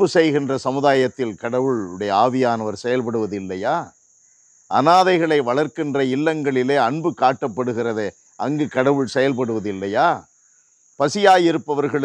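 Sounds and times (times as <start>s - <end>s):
man preaching: 0.0s - 3.9s, 4.7s - 10.2s, 11.0s - 12.0s
crickets chirring: 0.0s - 12.0s.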